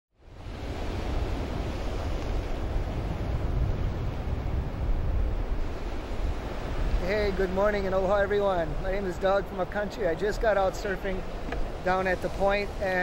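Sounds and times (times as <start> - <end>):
wind rumbling on microphone: 0.2 - 13.0
surf breaking on rocks: 0.9 - 13.0.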